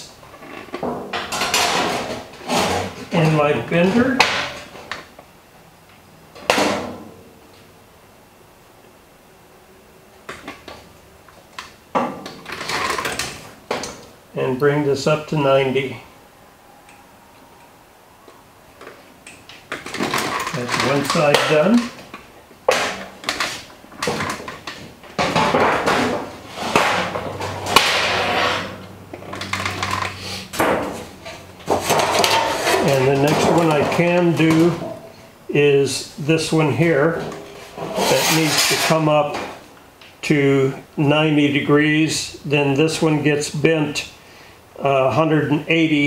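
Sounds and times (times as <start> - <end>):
sheet metal clanking and rattling: 0.8 - 3.1, 22.7 - 35.1.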